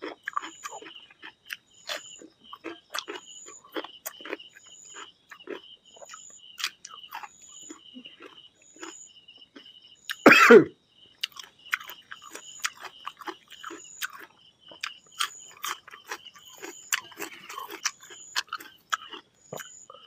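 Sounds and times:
wet chewing and mouth smacks: 0.0 - 10.2, 11.2 - 19.8
man coughing: 10.3 - 10.7.

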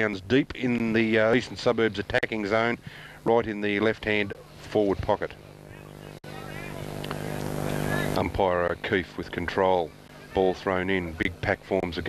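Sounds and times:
steady motor hum: 0.0 - 12.0
faint distant voices: 3.8 - 12.0.

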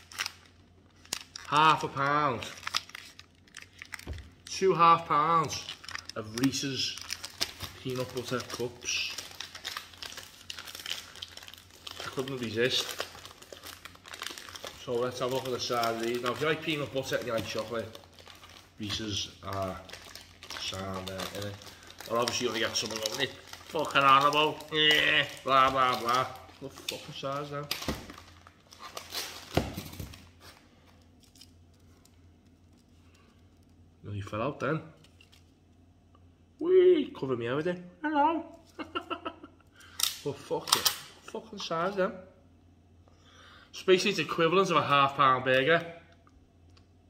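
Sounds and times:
packaging rustling: 0.0 - 4.5, 5.4 - 33.7
plastic wrapper crinkling: 0.0 - 33.8, 35.0 - 35.8, 39.8 - 41.7.

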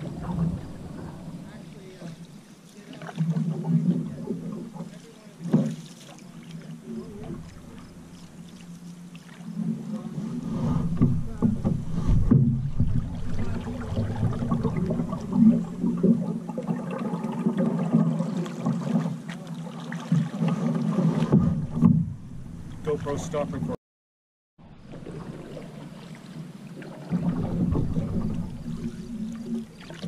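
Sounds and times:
water splashing against canoe hull: 0.0 - 23.7, 24.8 - 30.0
paddle strokes: 0.0 - 23.8, 24.8 - 30.0.

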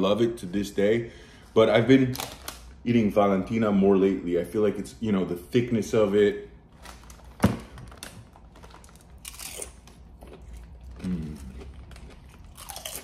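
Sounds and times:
potato chip crunch: 8.4 - 13.0
chewing with soft crunching: 9.3 - 13.0
man humming: 11.0 - 11.6.

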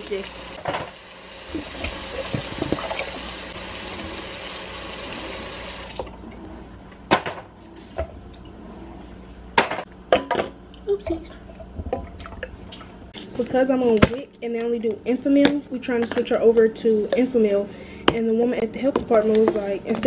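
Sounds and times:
tap running into sink: 0.6 - 3.2.

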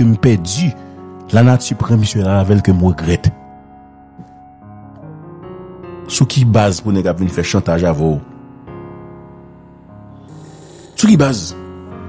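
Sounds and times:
soft music of held chords: 0.0 - 12.0.

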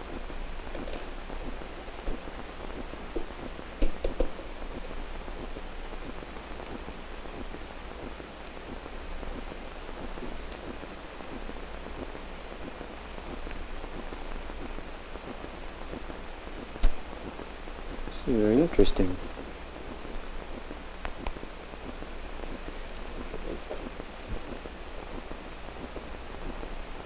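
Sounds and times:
film soundtrack hiss: 0.0 - 27.0.

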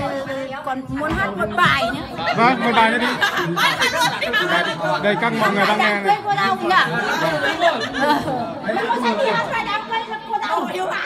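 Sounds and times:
women chatting: 0.4 - 2.4, 5.7 - 11.0.

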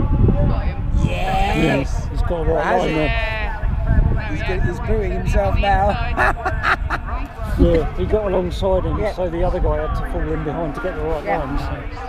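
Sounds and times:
wind rumble on microphone: 0.0 - 12.0
people talking: 0.5 - 3.4, 4.0 - 12.0.

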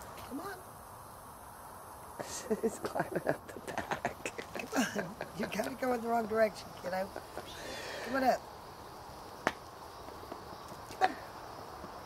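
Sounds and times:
faint outdoor background: 0.0 - 12.0.

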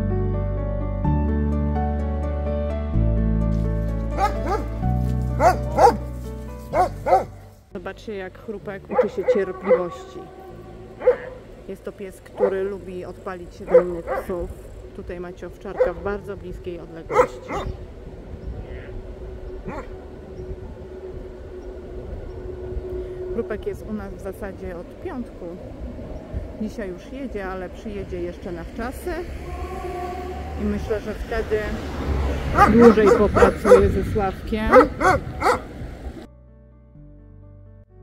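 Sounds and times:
soft background music: 0.0 - 38.0
background rumble: 3.6 - 36.3
low hum: 3.8 - 36.3
dog barking: 4.2 - 4.8, 5.4 - 6.0, 6.7 - 7.4, 8.9 - 10.1, 11.0 - 11.4, 12.4 - 12.7, 13.7 - 14.4, 15.7 - 16.0, 17.1 - 17.8, 19.6 - 19.9, 32.5 - 34.0, 34.7 - 35.7.

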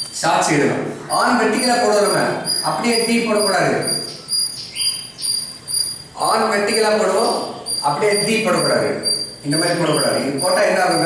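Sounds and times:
steady tone: 0.8 - 11.0
high-pitched chirping: 1.0 - 11.0.

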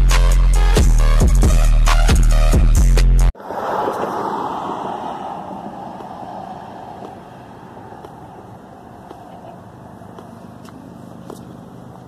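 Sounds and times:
low street rumble: 3.4 - 12.0.

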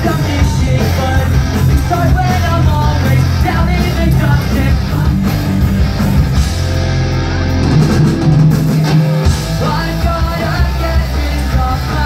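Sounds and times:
live rock band playing loud: 0.0 - 12.0.

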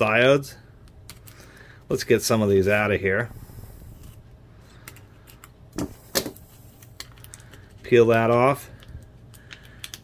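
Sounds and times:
plastic blister packaging crackling: 6.0 - 10.0.

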